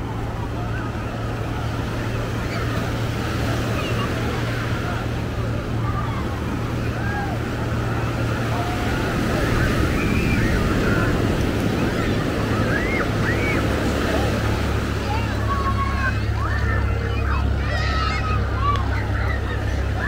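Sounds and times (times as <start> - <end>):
chatter of beachgoers: 0.0 - 20.0
ocean surf breaking: 0.0 - 20.0
voices calling out: 0.0 - 20.0.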